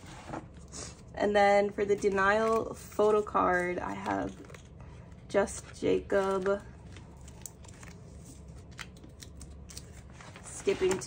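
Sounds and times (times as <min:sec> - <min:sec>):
plastic binder sleeves rustling: 0:01.9 - 0:11.0
page turning: 0:05.6 - 0:11.0.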